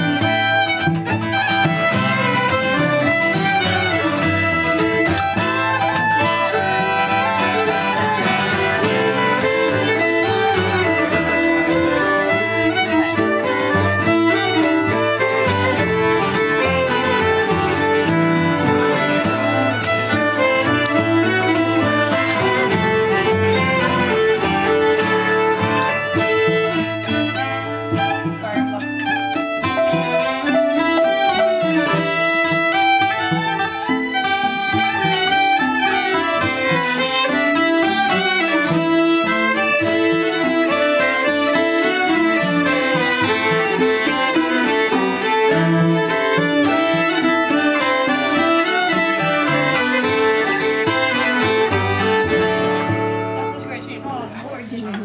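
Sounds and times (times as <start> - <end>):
cellos: 0.0 - 55.0
fiddles: 0.0 - 55.0
strummed acoustic guitar: 0.0 - 55.0.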